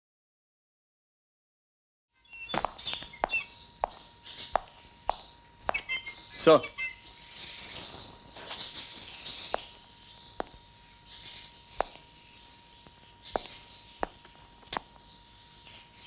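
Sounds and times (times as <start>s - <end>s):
faint steady high tone: 2.2s - 16.0s
high bird-like chirps: 2.2s - 16.0s.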